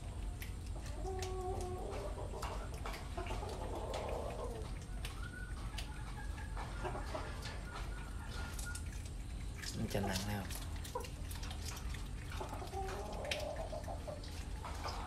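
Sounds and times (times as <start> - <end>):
clucking animal calls: 0.0 - 15.0
steady low hum: 0.0 - 15.0.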